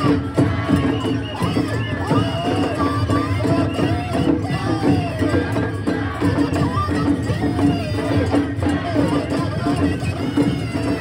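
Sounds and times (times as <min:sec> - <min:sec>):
taiko drums: 0:00.0 - 0:11.0.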